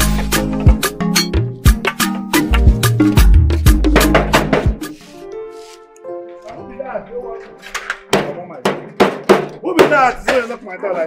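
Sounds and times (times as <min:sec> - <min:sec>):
background music: 0:00.0 - 0:11.0
hand banging on metal gate: 0:07.8 - 0:10.5.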